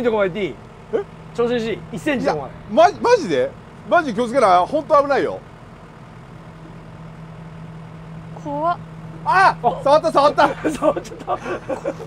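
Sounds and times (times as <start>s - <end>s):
excavator diesel engine humming: 0.0s - 12.0s.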